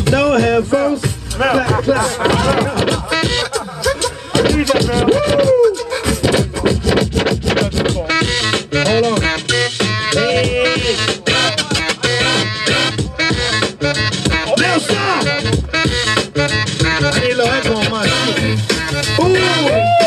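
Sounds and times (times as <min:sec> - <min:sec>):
hip-hop beat: 0:00.0 - 0:20.0
turntable record scratching: 0:01.0 - 0:09.2, 0:09.8 - 0:15.6.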